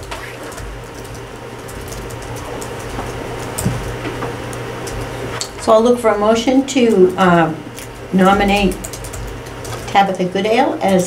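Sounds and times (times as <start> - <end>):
pens and papers rustling: 0.0 - 5.2
low room hum: 0.0 - 11.0.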